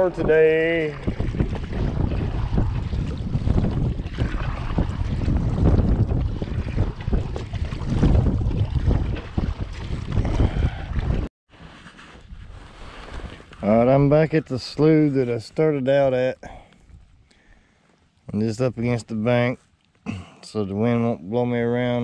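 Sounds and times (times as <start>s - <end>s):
wind buffeting microphone: 0.0s - 11.3s
kayak paddle splashing water: 0.9s - 11.2s.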